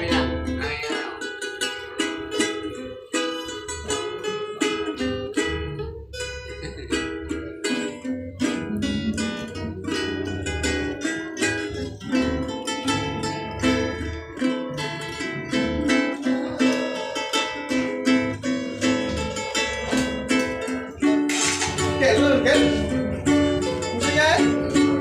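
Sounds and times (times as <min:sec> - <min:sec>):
acoustic guitar strumming: 0:00.0 - 0:25.0
ukulele strumming: 0:00.0 - 0:25.0.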